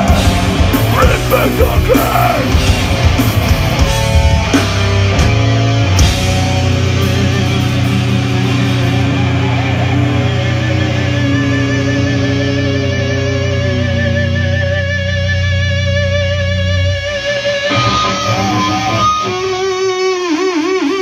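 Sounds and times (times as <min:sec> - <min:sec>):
electric guitar notes with vibrato: 0:00.0 - 0:21.0
heavy rock band playing: 0:00.0 - 0:21.0.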